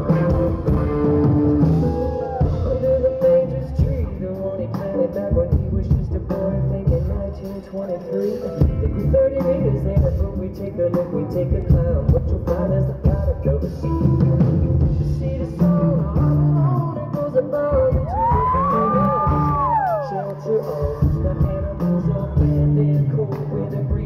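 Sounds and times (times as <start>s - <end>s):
drum beat: 0.0s - 4.4s, 17.9s - 20.1s
live pop band playing: 0.0s - 24.0s.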